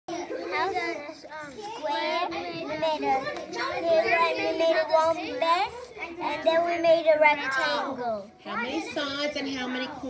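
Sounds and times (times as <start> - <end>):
young children talking: 0.1 - 10.0.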